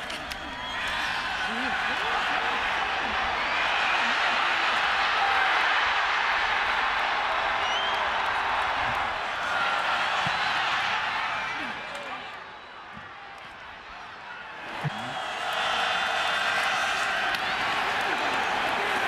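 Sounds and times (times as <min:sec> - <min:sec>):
stadium crowd cheering: 0:00.0 - 0:19.0.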